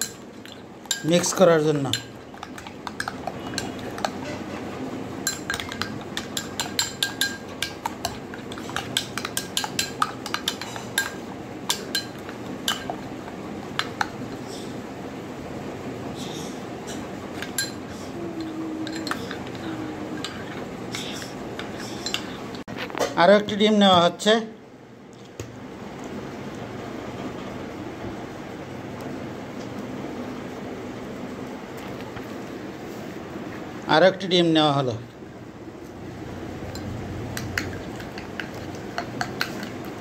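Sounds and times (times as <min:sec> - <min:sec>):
spoon scraping in bowl: 0:00.0 - 0:13.1, 0:16.9 - 0:22.6, 0:37.5 - 0:40.0.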